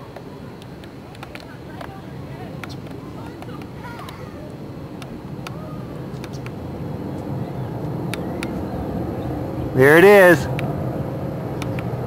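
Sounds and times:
distant jet engine rumble: 0.0s - 12.0s.

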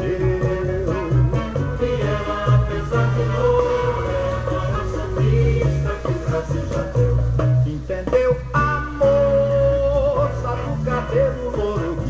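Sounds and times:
samba song from vinyl record: 0.0s - 12.0s.

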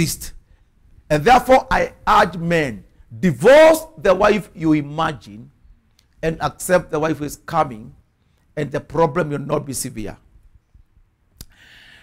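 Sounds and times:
man's mouth click: 11.3s - 11.6s
man breathing in: 11.5s - 12.0s.

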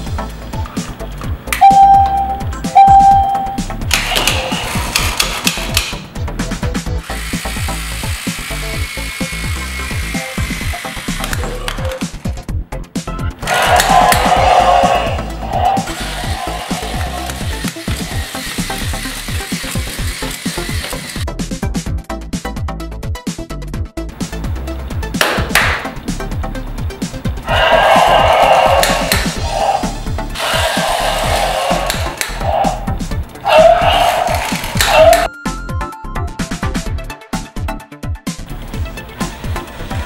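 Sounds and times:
background music with steady beat: 0.0s - 40.0s
toy electronic beeps: 1.6s - 3.7s
toy electronic sound effects: 1.6s - 4.8s, 30.4s - 32.8s, 33.5s - 35.3s.

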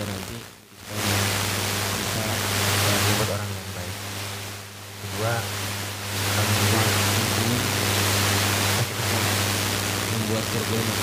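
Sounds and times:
low electrical hum: 0.0s - 11.0s
steady hiss: 0.0s - 11.0s.

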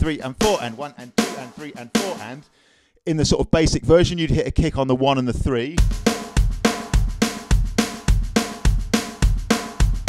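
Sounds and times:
electronic drum kit beat: 0.0s - 2.4s, 5.8s - 10.0s.

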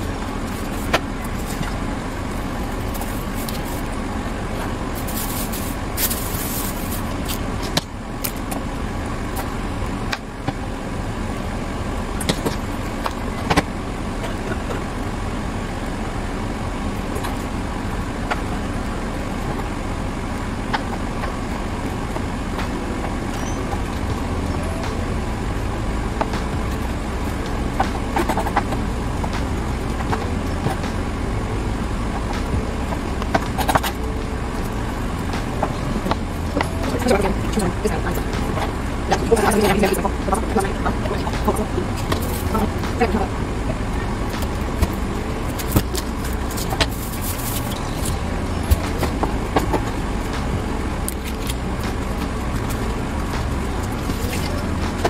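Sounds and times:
steady background rumble: 0.0s - 55.0s.

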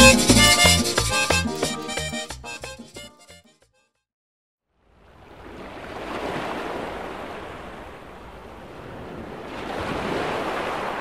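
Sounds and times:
ocean waves washing in: 4.9s - 11.0s.

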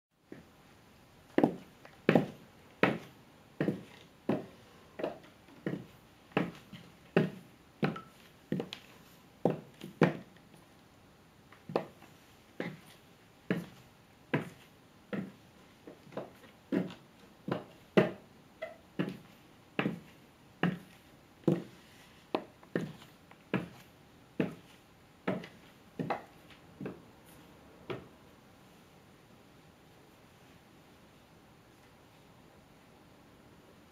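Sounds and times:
high heels clicking on tiles: 1.4s - 10.3s, 13.5s - 18.2s, 19.0s - 20.9s, 25.3s - 27.0s.

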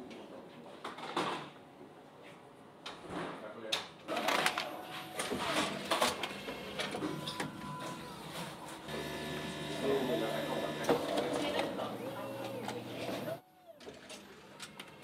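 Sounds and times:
motorised whirring hum: 4.2s - 15.0s.

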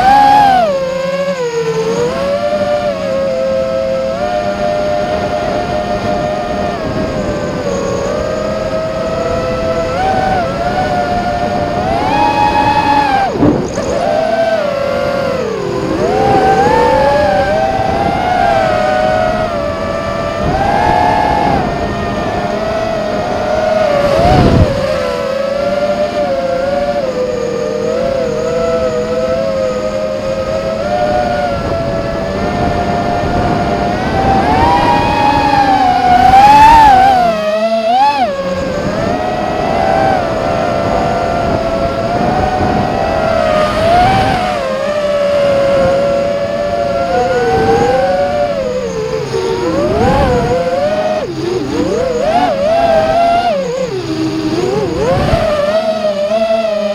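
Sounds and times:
drone propellers whining: 0.0s - 56.9s.

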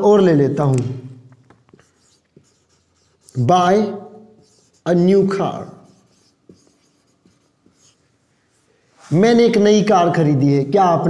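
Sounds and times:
marker scratching on whiteboard: 1.5s - 9.6s.

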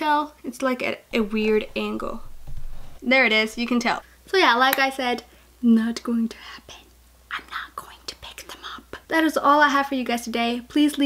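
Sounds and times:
woman whispering: 6.4s - 9.0s.

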